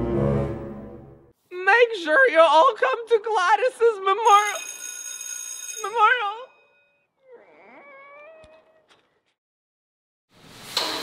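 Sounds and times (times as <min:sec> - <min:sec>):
cat meowing: 0:07.2 - 0:09.0.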